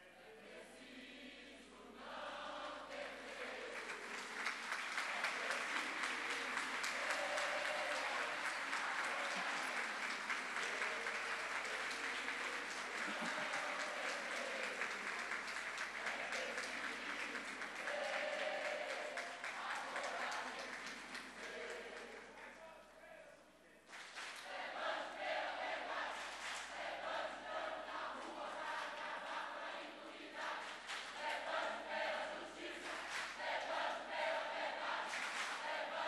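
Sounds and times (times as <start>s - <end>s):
audience applauding: 3.4s - 22.5s, 34.8s - 36.0s.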